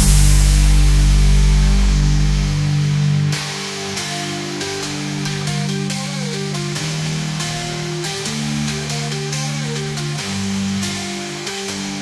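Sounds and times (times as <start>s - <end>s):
low chord with deep bass: 0.0s - 11.2s.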